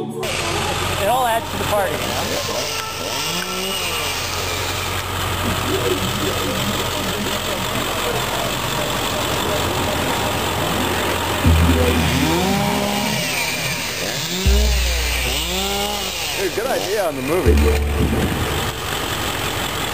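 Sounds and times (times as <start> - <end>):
chainsaw revving: 0.3 - 19.9
low rumble: 11.5 - 13.4, 14.5 - 15.8.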